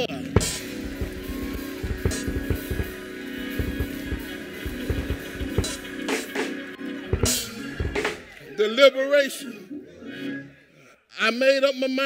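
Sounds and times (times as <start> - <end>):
irregular drum beats: 0.4 - 8.3.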